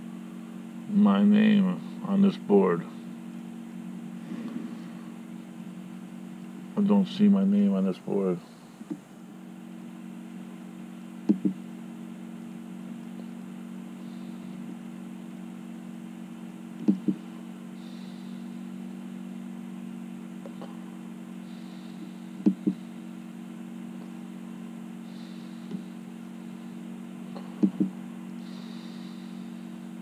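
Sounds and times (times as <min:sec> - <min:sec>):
electric fan motor humming: 0:00.0 - 0:30.0.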